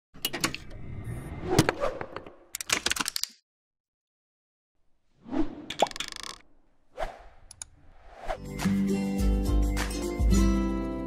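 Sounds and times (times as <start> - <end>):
whoosh: 7.0 - 8.4.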